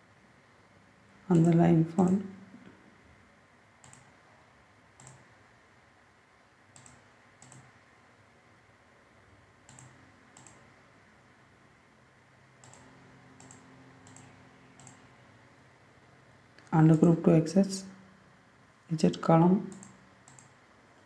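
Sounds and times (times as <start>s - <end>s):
faint room hum: 0.0s - 21.0s
computer mouse clicking: 3.8s - 4.1s, 5.0s - 5.3s, 6.7s - 7.8s, 9.6s - 10.7s, 12.6s - 15.1s, 19.7s - 20.6s.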